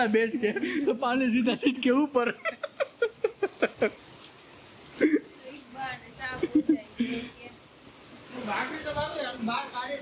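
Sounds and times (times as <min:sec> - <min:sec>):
man laughing: 0:00.0 - 0:04.0
faint steady hiss: 0:00.0 - 0:10.0.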